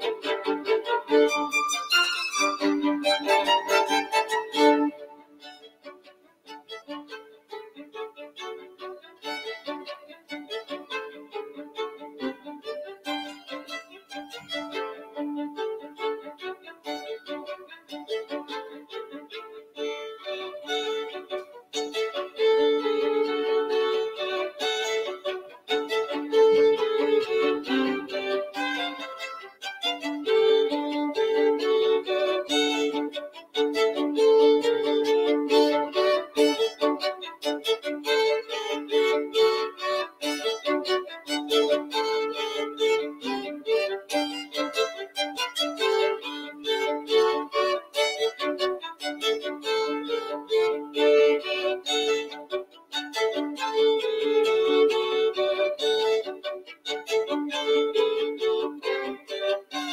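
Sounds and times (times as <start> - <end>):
violin duet: 0.0 - 59.9.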